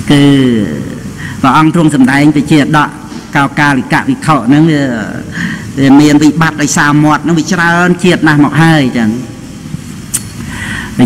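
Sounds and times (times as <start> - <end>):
man breathing in: 5.3 - 5.8, 10.4 - 11.0
short click: 10.1 - 10.4.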